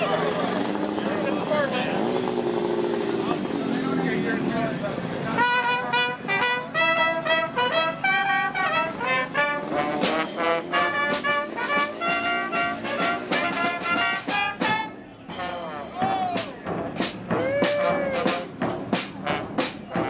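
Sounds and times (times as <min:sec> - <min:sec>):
voices talking: 0:00.0 - 0:09.8
street brass band playing: 0:00.0 - 0:20.0
drum strokes: 0:09.0 - 0:20.0.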